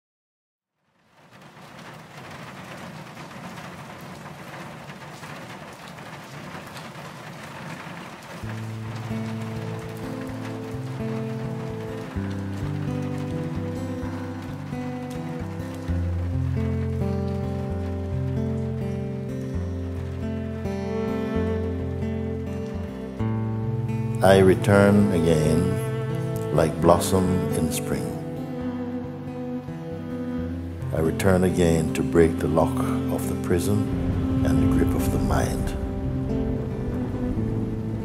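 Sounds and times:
heavy rainfall: 0.8 - 38.0
music with low held notes: 8.4 - 38.0.

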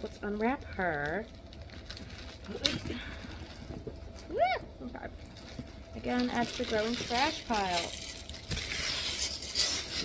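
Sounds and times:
wrapping crackling: 0.0 - 10.0
wrapping rustling: 0.0 - 10.0.

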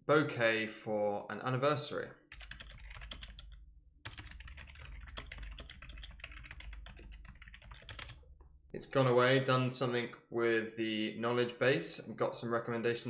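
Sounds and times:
computer keyboard typing: 2.3 - 8.3.

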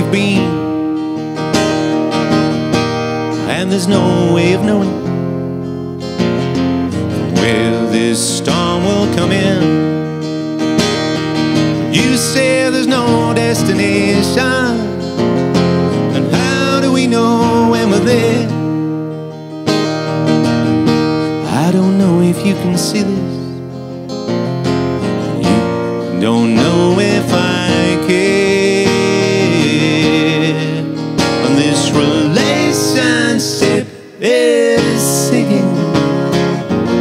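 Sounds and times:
person singing: 0.0 - 0.8, 3.4 - 5.2, 7.2 - 10.0, 11.8 - 15.1, 16.1 - 18.7, 21.3 - 23.6, 25.1 - 37.0
acoustic guitar strumming: 0.0 - 37.0.

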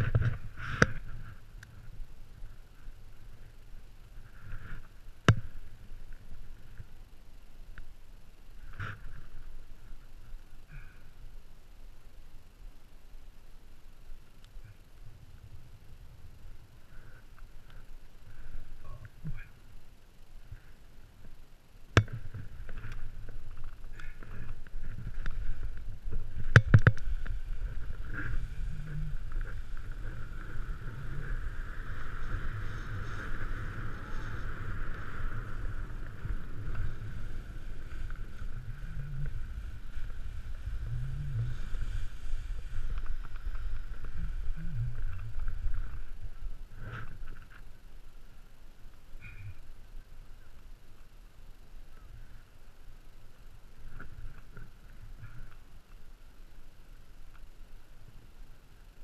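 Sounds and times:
wind rumble on microphone: 22.0 - 47.6
snowboard swishing through snow: 27.1 - 46.7.

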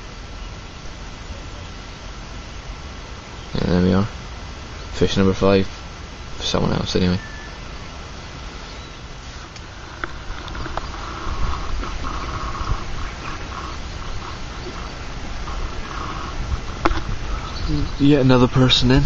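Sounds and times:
wind rumbling on microphone: 0.0 - 19.0.

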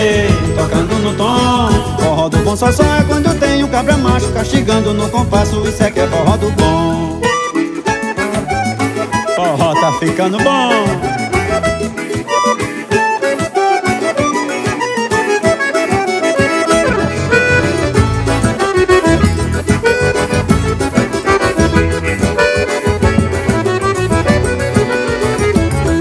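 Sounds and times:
bass: 0.0 - 9.8, 11.0 - 12.4, 16.2 - 26.0
accordion melody: 0.0 - 26.0
steady beat: 0.0 - 26.0.

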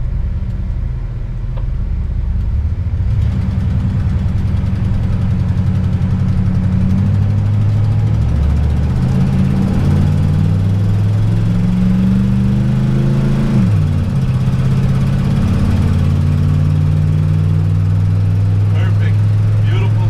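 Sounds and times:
engine while driving: 0.0 - 20.0.

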